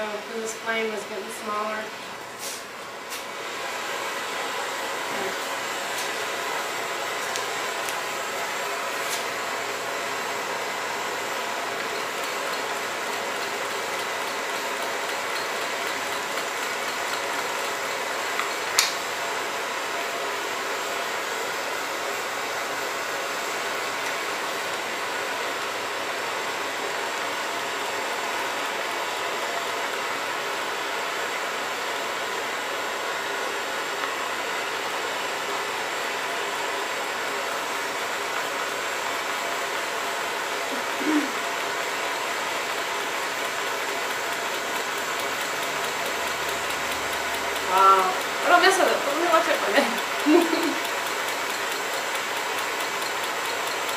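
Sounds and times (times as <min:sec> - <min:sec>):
blowtorch flame hissing: 0:00.2 - 0:53.9
engine flywheel running: 0:05.0 - 0:30.9, 0:40.7 - 0:53.9
sharp click: 0:18.8 - 0:19.0.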